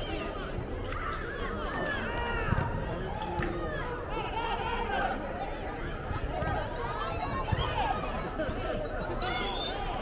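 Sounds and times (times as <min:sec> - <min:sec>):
players and spectators shouting: 0:00.0 - 0:10.0.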